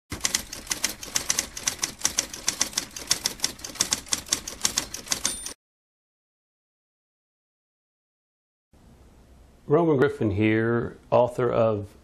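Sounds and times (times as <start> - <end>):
typewriter keys clacking: 0.1 - 5.6
typewriter bell ring: 3.1 - 5.6.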